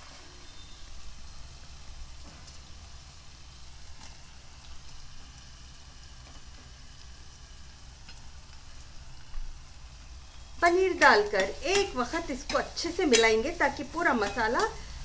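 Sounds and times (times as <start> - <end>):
sauce sizzling in a pot: 0.0 - 15.0.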